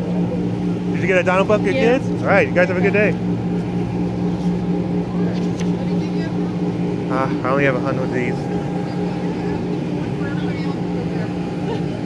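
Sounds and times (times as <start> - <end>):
electric blower fan humming: 0.0 - 12.0.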